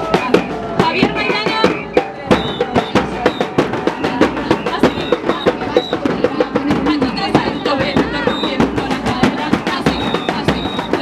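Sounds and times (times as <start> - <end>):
bass drums beating: 0.0 - 11.0
cymbals: 0.0 - 11.0.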